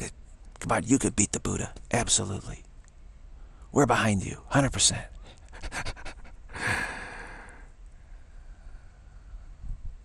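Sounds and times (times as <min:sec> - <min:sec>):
man's breathy laughter: 0:05.6 - 0:07.2.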